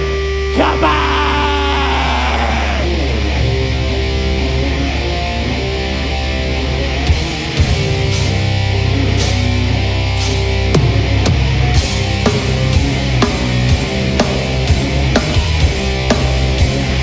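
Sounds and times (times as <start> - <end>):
distorted guitar riffing: 0.0 - 17.0
heavy metal band playing: 0.0 - 17.0.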